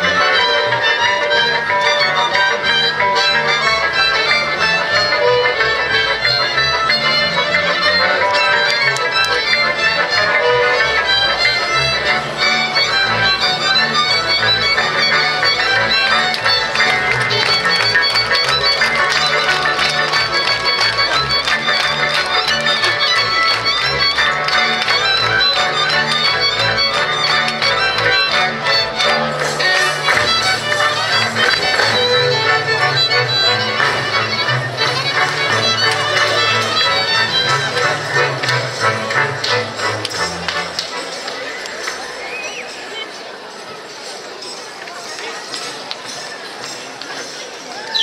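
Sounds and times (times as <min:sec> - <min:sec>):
low bass line: 0:00.0 - 0:40.8
violins bowing a quick melody: 0:00.0 - 0:42.0
folk band playing dance tune: 0:00.0 - 0:48.0.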